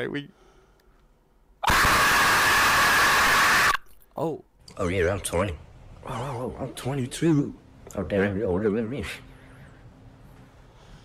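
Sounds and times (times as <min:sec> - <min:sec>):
man screaming distorted: 0:01.6 - 0:03.8.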